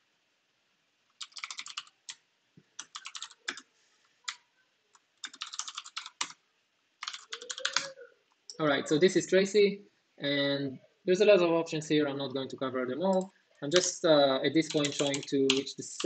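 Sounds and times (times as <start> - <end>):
computer keyboard typing: 1.2 - 2.2, 2.8 - 3.7, 5.2 - 6.4, 7.0 - 8.0, 13.1 - 14.0, 14.6 - 16.0.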